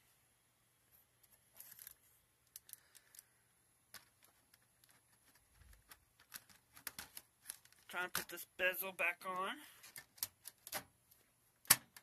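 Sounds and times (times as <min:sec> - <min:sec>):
clicks and taps on computer case: 0:11.6 - 0:12.0.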